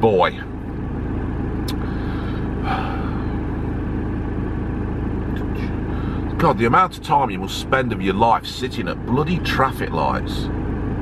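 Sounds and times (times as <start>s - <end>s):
van engine idling: 0.0s - 11.0s.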